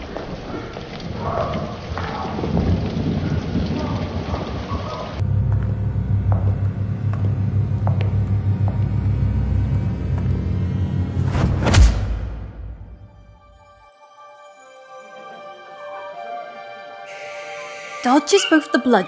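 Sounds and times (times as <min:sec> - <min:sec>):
rain: 0:00.0 - 0:06.6
thunder rumbling: 0:00.0 - 0:07.0
steady low hum: 0:05.2 - 0:11.6.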